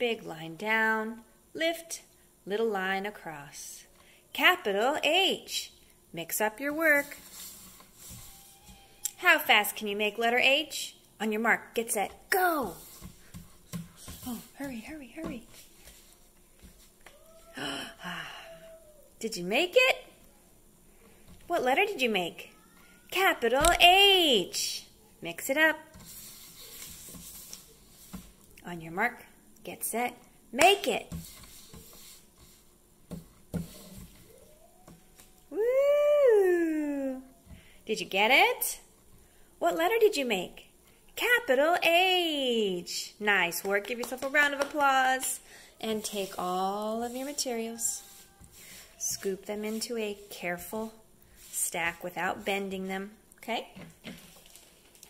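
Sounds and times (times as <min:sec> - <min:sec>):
paper rustling on table: 0:06.9 - 0:08.9, 0:15.4 - 0:17.4, 0:25.9 - 0:28.4, 0:31.1 - 0:34.4, 0:45.9 - 0:50.3, 0:54.0 - 0:55.0
paper sliding on wooden table: 0:07.0 - 0:08.5, 0:26.0 - 0:28.4, 0:31.1 - 0:34.1.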